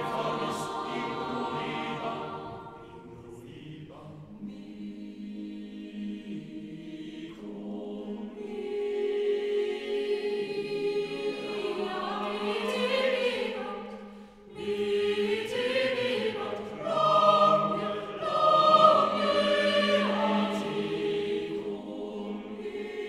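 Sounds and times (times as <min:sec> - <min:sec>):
choir singing a cappella: 0:00.0 - 0:23.0.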